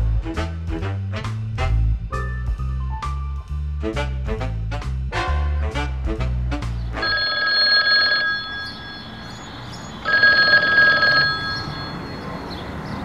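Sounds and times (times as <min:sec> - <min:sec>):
music: 0:00.0 - 0:07.0
phone ringing: 0:07.0 - 0:12.6.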